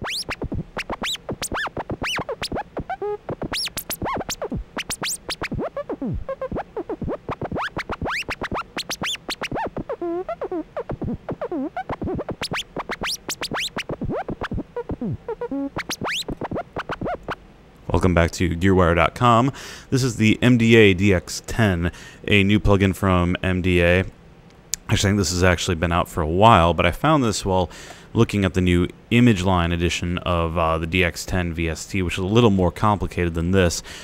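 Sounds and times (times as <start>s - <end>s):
synthesizer notes sweeping in pitch: 0.0s - 17.4s.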